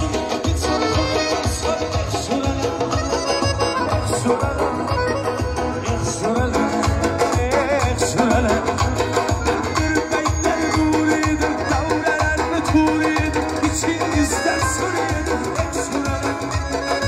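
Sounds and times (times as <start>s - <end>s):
live band playing dance song: 0.0s - 17.0s
man singing: 0.0s - 17.0s.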